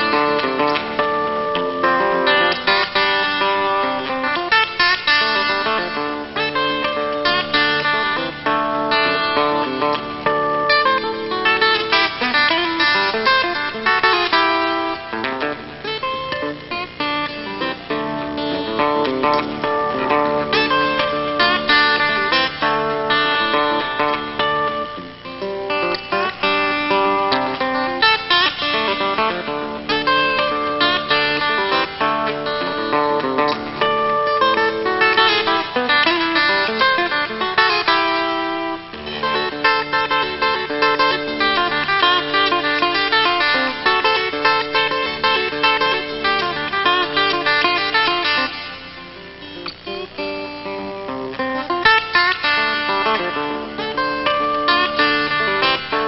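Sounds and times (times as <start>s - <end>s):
acoustic guitar: 0.0s - 56.0s.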